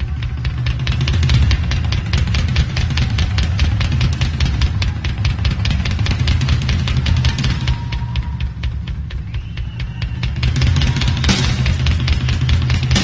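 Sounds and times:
cymbals struck at fast beat: 0.0s - 13.0s
rock band playing live: 10.1s - 13.0s.

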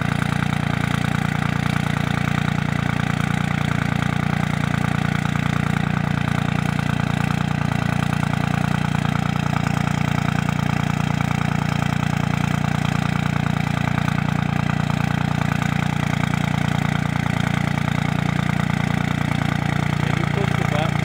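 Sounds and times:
diesel engine idling: 0.0s - 21.0s.

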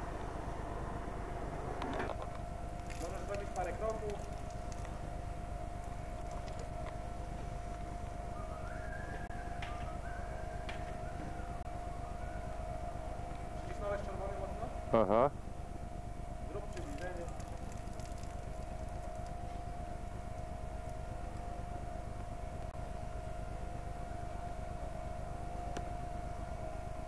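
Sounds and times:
high-pitched machine whine: 0.0s - 27.0s.

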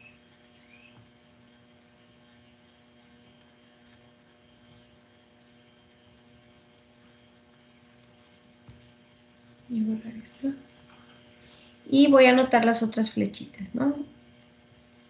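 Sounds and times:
faint electrical hum: 0.0s - 15.0s.

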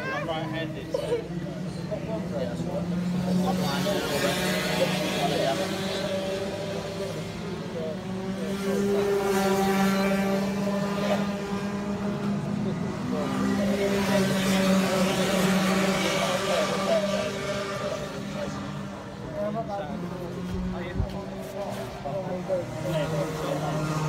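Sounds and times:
kart engines droning: 0.0s - 24.0s.

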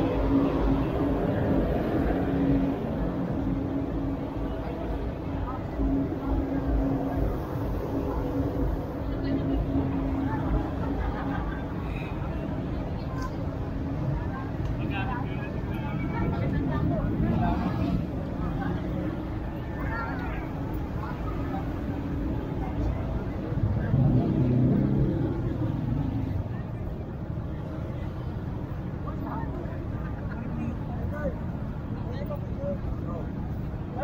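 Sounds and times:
crowd chatter: 0.0s - 34.0s
vehicle engines rumbling: 0.0s - 34.0s.

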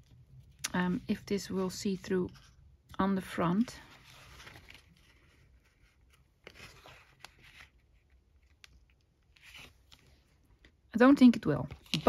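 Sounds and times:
paper rustling: 3.4s - 10.2s.

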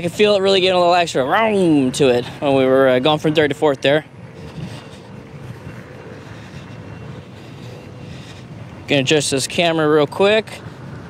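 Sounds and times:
wind on microphone: 0.0s - 11.0s.

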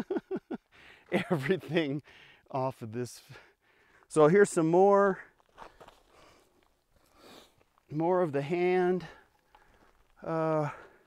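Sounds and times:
footsteps scuffing on dirt: 5.1s - 10.3s.

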